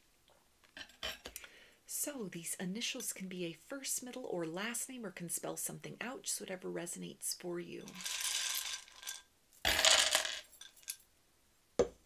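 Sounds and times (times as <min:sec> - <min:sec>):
wooden tiles clattering on table: 0:07.9 - 0:11.0.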